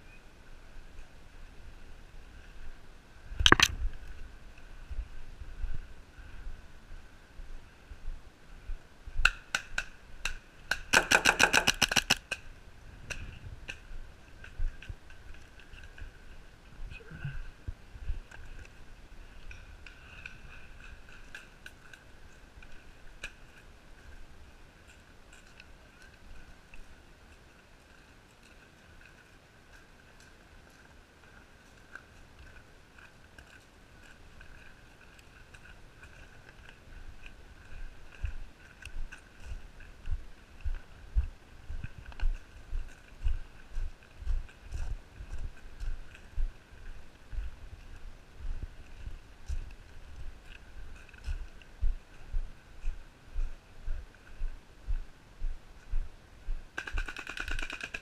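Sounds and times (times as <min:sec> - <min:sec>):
paintball marker firing: 0:10.7 - 0:12.2.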